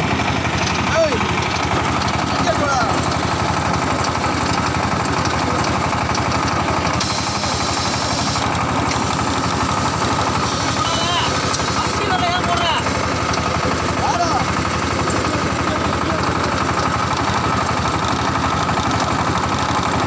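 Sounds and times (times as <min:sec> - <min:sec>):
brick machine droning: 0:00.0 - 0:20.0.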